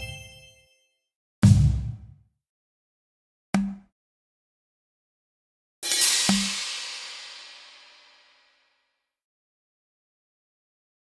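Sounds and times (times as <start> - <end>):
drum hit with low thud: 1.4 - 2.2
cymbal crash: 5.8 - 8.7.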